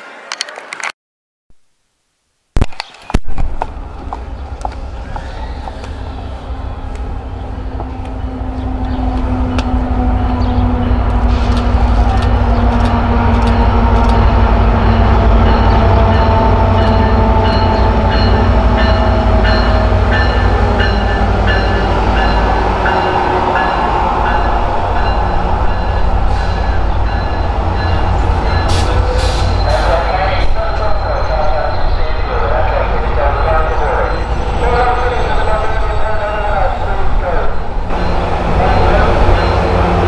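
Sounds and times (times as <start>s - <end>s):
rail clicks: 2.6s - 31.8s, 32.4s - 40.0s
passing train rumble: 3.4s - 40.0s.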